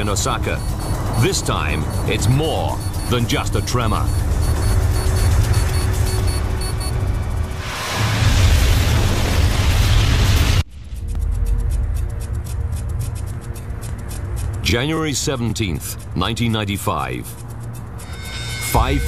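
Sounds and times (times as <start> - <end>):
rapid ticking: 0.0 - 7.9, 10.6 - 19.0
deep earthquake rumble: 0.0 - 14.5
dramatic documentary music: 0.0 - 19.0.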